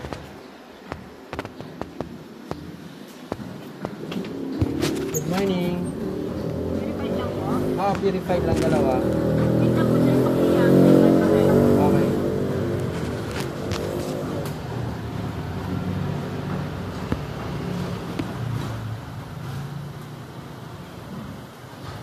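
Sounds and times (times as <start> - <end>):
vehicle engine running: 3.8 - 21.3.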